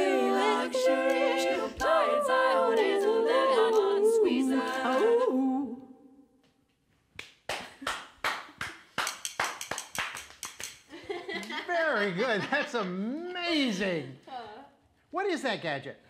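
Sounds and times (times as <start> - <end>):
layered a cappella female vocals: 0.0 - 6.2
people clapping: 7.2 - 11.7.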